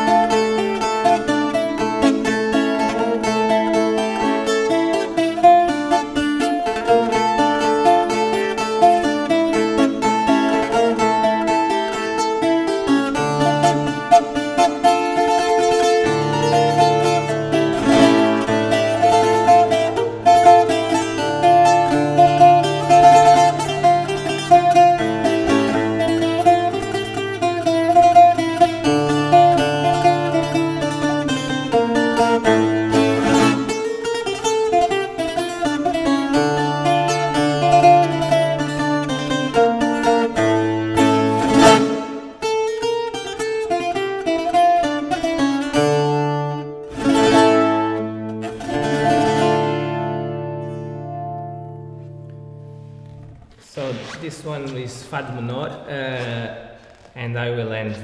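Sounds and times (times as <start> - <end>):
twelve-string viola played solo: 0.0 - 53.4.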